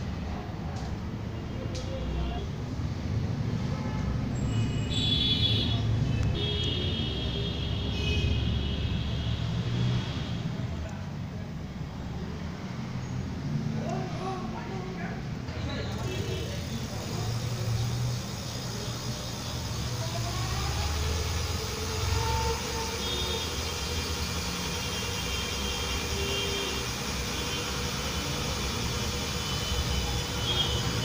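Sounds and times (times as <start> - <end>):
electric hub motor humming: 4.9 - 31.0.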